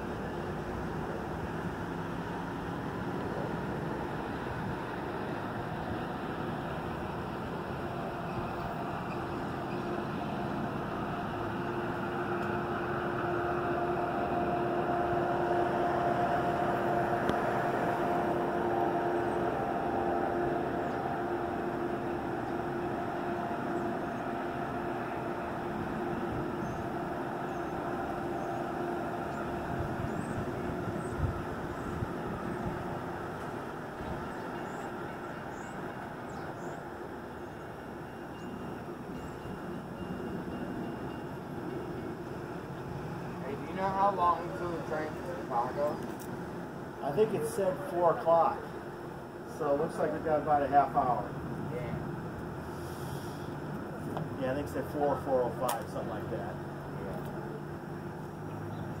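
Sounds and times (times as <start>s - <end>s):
train engine hum and rumble: 0.0s - 59.0s.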